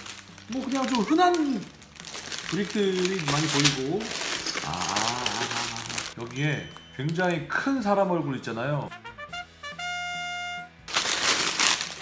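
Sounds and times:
plastic bags crinkling: 0.0s - 7.7s, 10.9s - 12.0s.

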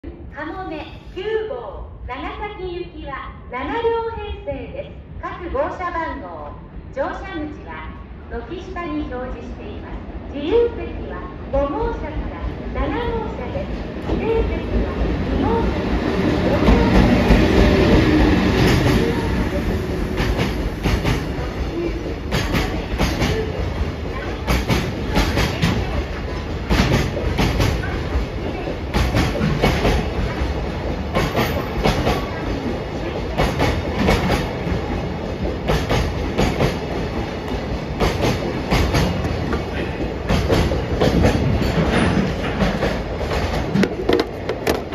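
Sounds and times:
electric locomotive passing: 9.1s - 44.9s
wheels clicking over rail joints: 40.3s - 44.9s.

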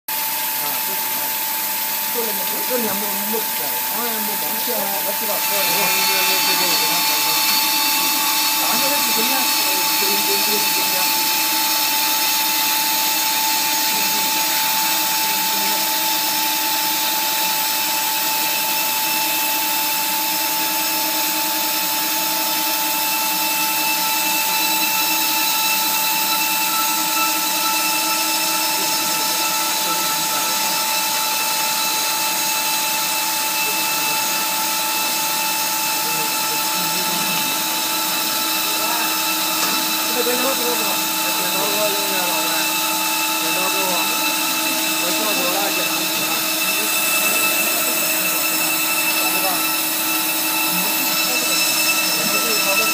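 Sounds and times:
cutting machine whine: 0.1s - 52.9s.

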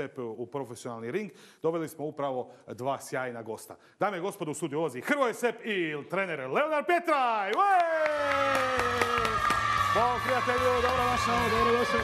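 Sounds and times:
studio audience cheering: 7.5s - 12.0s
man's drawn-out announcer call: 9.9s - 12.0s.

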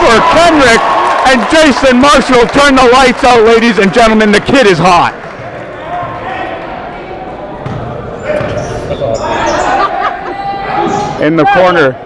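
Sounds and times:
shouts and crowd voices echoing: 8.2s - 12.0s.

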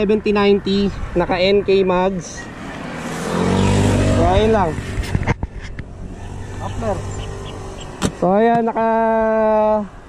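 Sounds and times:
motorcycle seat clicks and knocks: 7.8s - 8.7s.

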